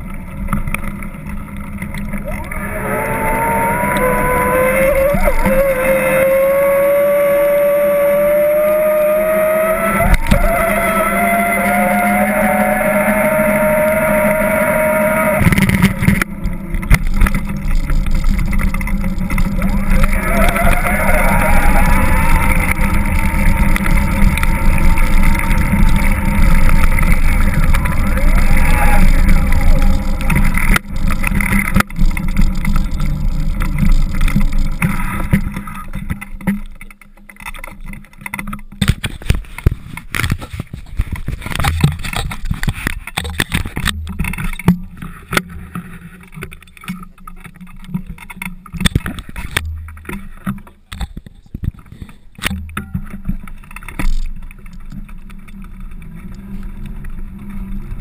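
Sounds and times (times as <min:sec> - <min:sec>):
small clicks and knocks: 0:15.4 - 0:58.0.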